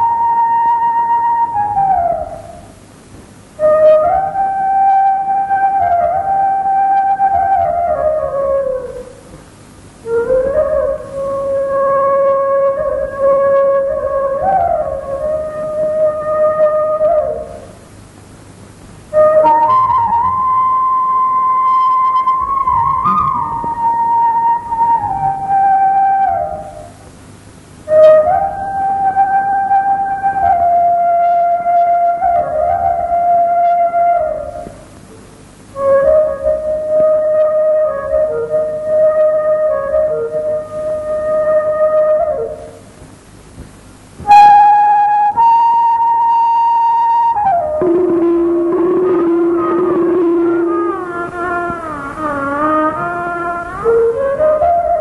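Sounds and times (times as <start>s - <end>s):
held flute note: 0.0s - 2.9s, 3.5s - 18.0s, 19.1s - 27.2s, 27.8s - 43.2s, 44.2s - 55.0s
faint hiss: 0.0s - 55.0s.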